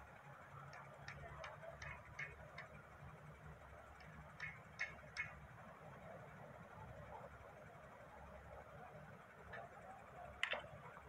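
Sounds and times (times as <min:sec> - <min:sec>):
faint sharp clicks: 0:00.6 - 0:02.8, 0:04.0 - 0:05.4, 0:10.4 - 0:11.0.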